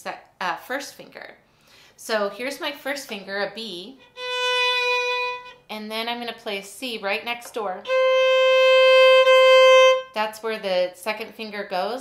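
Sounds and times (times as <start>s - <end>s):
violin bowing a long note: 4.0s - 5.6s, 7.8s - 10.2s.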